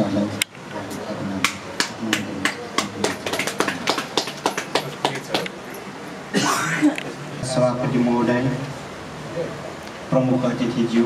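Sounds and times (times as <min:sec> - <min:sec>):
people clapping: 0:01.4 - 0:05.6.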